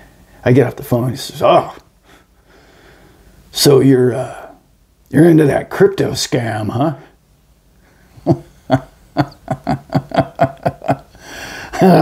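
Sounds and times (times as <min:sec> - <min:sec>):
man laughing: 0:08.2 - 0:12.0.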